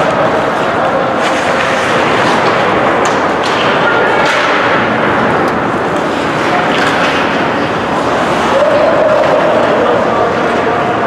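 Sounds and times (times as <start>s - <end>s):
ice rink noise rush: 0.0s - 11.0s.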